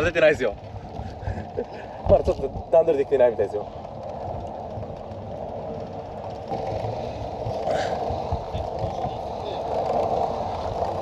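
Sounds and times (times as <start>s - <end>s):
bicycle tyres and chain whirring: 0.0s - 11.0s
wind rumbling on microphone: 0.0s - 11.0s.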